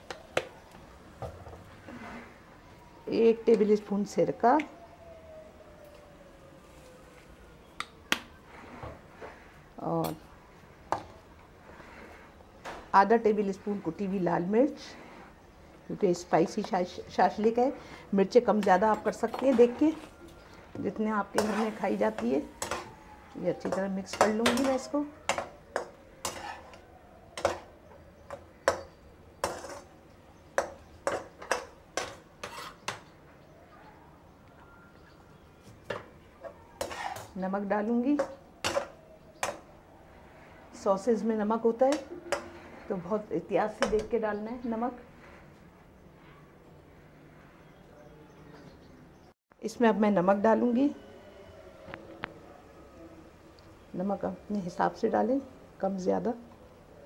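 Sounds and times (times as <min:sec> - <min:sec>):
metal spatula scraping a wok: 0:21.3 - 0:22.9, 0:24.1 - 0:26.8, 0:28.7 - 0:30.0, 0:30.6 - 0:33.1, 0:36.8 - 0:37.4.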